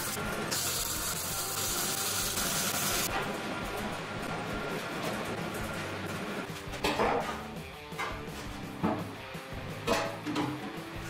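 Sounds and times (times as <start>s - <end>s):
welder arc crackling and hissing: 0.0s - 3.1s.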